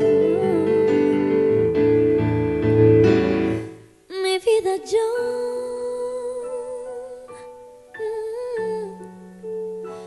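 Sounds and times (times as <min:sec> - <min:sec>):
soft backing track: 0:00.0 - 0:10.0.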